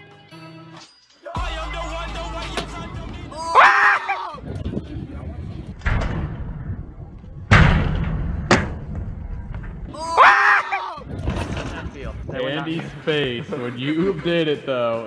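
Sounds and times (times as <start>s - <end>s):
young man shouting excitedly: 3.3s - 4.4s, 10.0s - 11.1s
thuds on concrete ramp: 5.8s - 9.9s.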